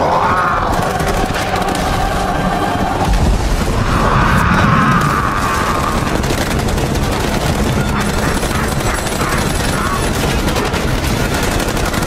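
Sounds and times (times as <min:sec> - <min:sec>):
film score music: 0:00.0 - 0:12.0
rumble of battle effects: 0:00.0 - 0:12.0.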